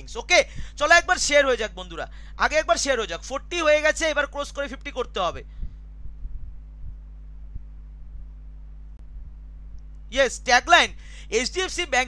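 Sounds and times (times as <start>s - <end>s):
soft low thumps: 0.0s - 0.9s, 5.3s - 10.1s
low electrical hum: 0.0s - 12.0s.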